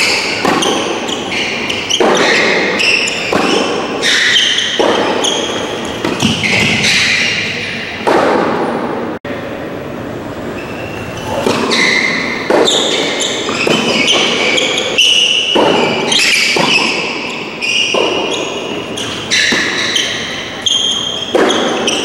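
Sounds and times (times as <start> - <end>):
tennis ball bouncing: 0.0 - 9.0, 11.3 - 22.0
tennis ball hits echoing: 0.0 - 9.0, 11.4 - 17.2, 17.9 - 18.6, 19.2 - 20.3, 21.2 - 22.0.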